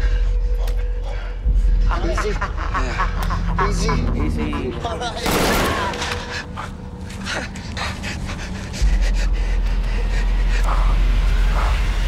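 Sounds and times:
chimpanzee panting: 6.2 - 12.0.

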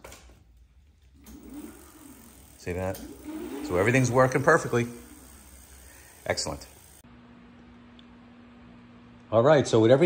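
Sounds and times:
electric hub motor whirring: 1.1 - 7.1.

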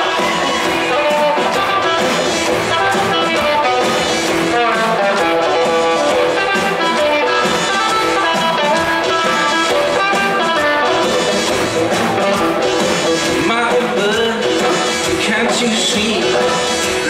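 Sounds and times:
bass guitar: 0.0 - 17.0
drums: 0.0 - 17.0
electric guitars: 0.0 - 17.0.

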